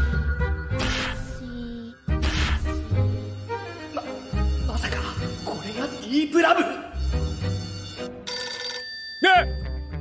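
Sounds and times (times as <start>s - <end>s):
background music: 0.0s - 10.0s
telephone bell ringing: 6.9s - 9.7s.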